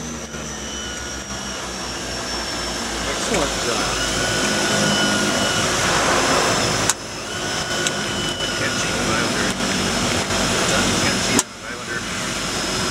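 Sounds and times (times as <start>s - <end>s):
turboprop engines droning: 0.0s - 12.9s.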